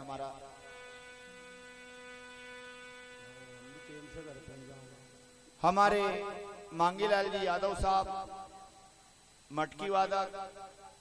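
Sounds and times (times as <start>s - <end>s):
faint buzzy low hum: 0.0s - 11.0s.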